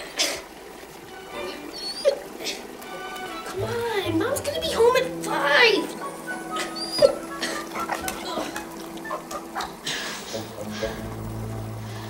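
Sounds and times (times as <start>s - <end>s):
background film music: 0.0s - 12.0s.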